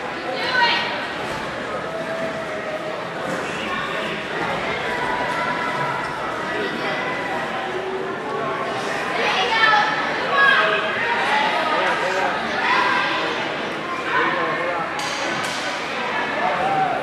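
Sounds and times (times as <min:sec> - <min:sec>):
voices talking and calling out: 0:00.0 - 0:17.0.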